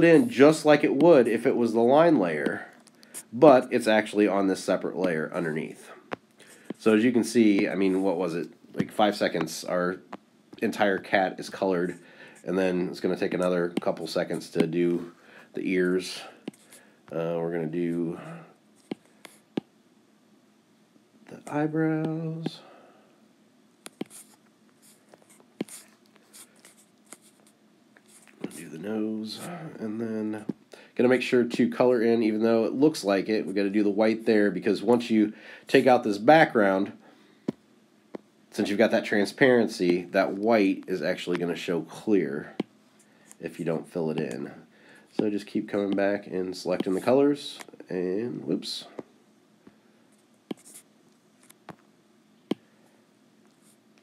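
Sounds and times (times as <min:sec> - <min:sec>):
stylus scratching on screen: 0:06.4 - 0:09.5, 0:23.9 - 0:29.5, 0:50.5 - 0:51.8.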